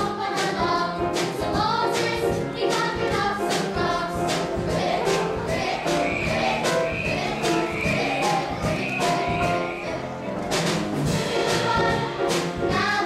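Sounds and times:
choir singing: 0.0 - 10.5, 11.1 - 13.0
musical accompaniment with steady beat: 0.0 - 13.0.

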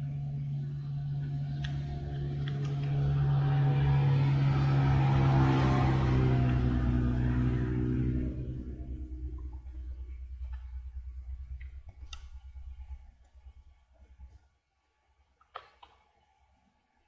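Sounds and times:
low engine hum: 0.0 - 14.3.

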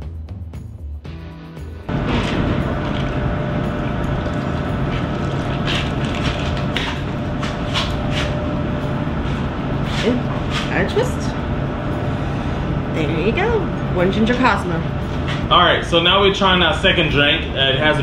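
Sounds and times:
steady mechanical hum: 1.9 - 18.0.

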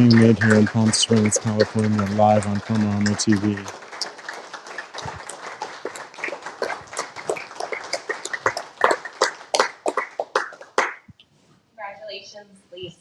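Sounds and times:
scattered applause: 0.0 - 11.1.

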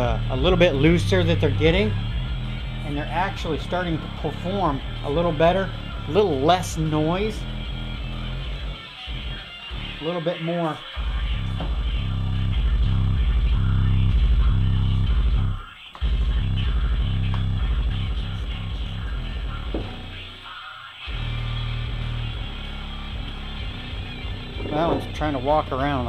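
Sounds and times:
bass-heavy guitar music: 0.0 - 26.0.

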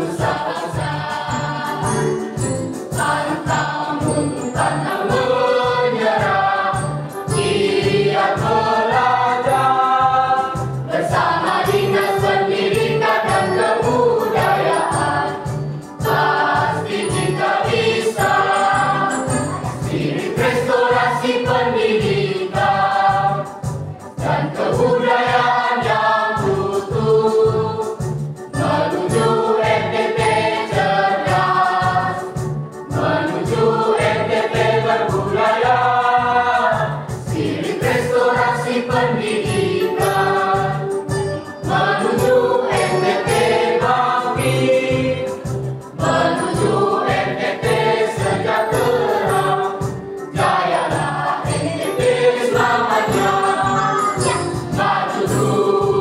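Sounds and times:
low rhythmic pulse: 0.0 - 56.0
mixed choir singing: 0.0 - 56.0.

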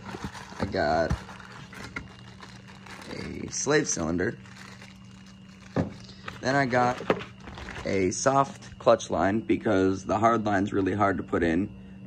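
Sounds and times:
plastic bag and cardboard rustling: 0.0 - 8.8.

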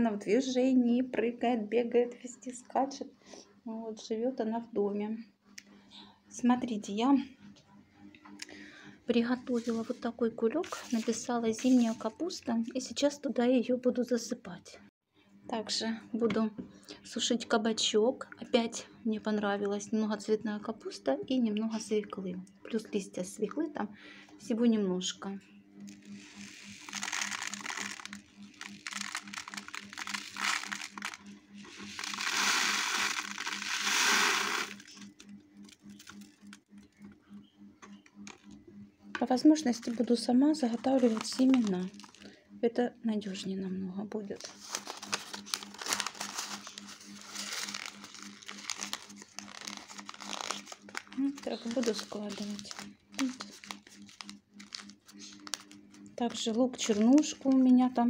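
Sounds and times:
faint steady hum: 15.2 - 58.0
seeds poured into paper cone: 25.9 - 36.6, 40.8 - 42.2, 44.5 - 55.7.

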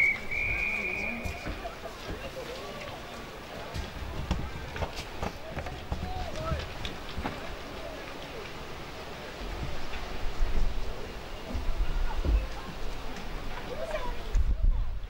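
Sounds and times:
distant people calling and shouting: 0.0 - 15.0
wind buffeting microphone: 8.6 - 15.0.

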